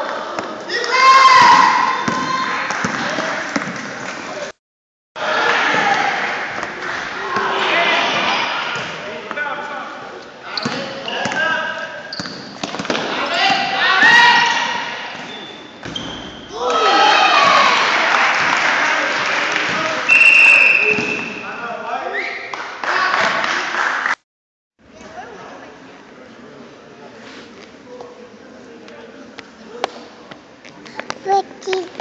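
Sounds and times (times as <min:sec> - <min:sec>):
referee whistle blast: 0:20.1 - 0:21.4.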